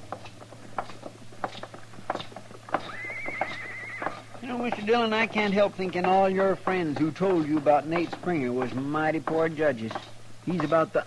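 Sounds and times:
hooves clip-clopping: 0.0 - 11.0
horse whinnying: 2.8 - 4.5.

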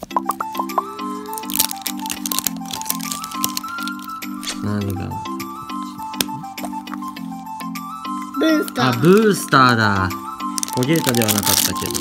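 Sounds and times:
plastic packaging crackling: 0.0 - 7.2, 8.2 - 12.0
light background music: 0.0 - 12.0.

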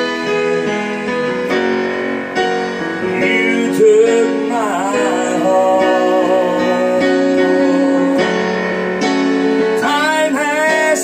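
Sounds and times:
digital piano chords: 0.0 - 11.0
person singing: 3.0 - 8.9, 9.7 - 11.0.

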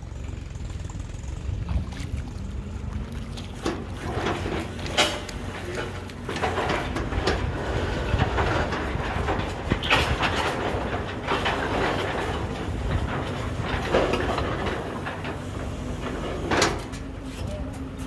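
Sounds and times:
drilling rig low rumble: 0.0 - 18.0.

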